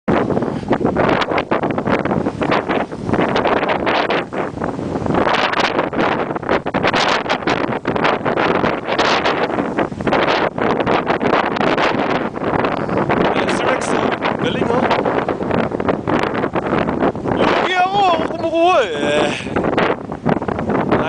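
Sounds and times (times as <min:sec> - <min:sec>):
wind buffeting microphone: 0:00.1 - 0:21.0.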